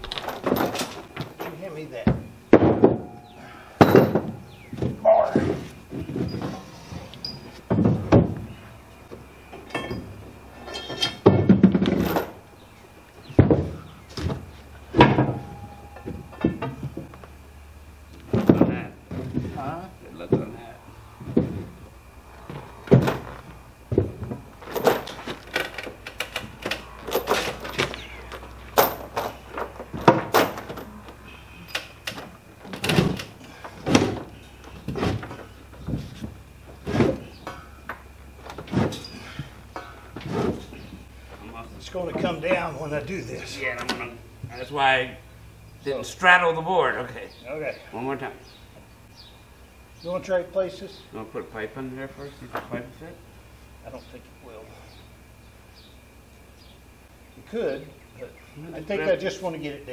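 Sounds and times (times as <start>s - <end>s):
indistinct voices: 2.8s - 5.7s.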